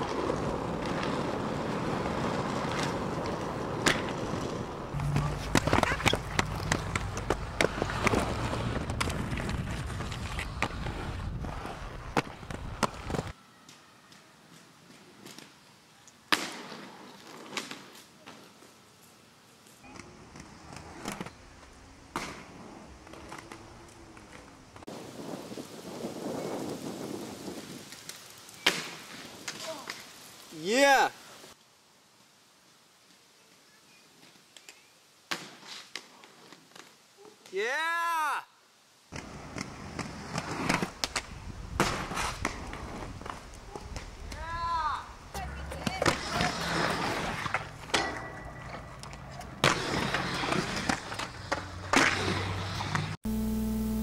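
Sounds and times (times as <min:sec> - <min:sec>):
skates clicking: 0:00.0 - 0:13.4, 0:14.1 - 0:24.9, 0:39.2 - 0:53.2
skate wheels rolling on concrete: 0:00.0 - 0:37.9, 0:39.0 - 0:53.3
person shouting: 0:37.6 - 0:38.6, 0:44.4 - 0:45.6.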